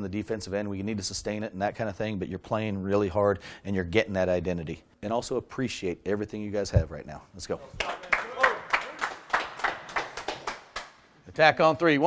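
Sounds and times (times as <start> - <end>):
people clapping in a steady beat: 7.8 - 11.1.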